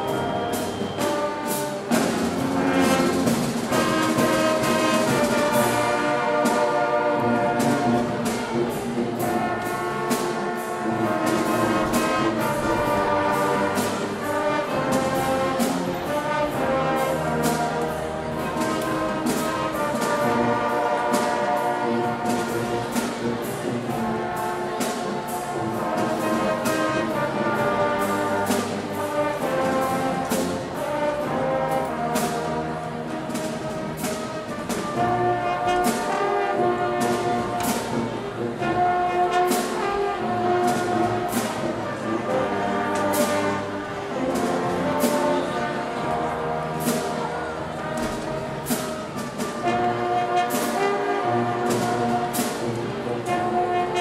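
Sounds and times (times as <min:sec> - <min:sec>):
marching band brass playing: 0:00.0 - 0:54.0.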